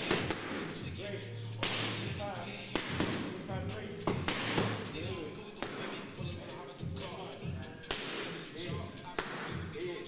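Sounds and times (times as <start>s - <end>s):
punches on boxing mitts: 0.0s - 0.8s, 1.6s - 6.1s.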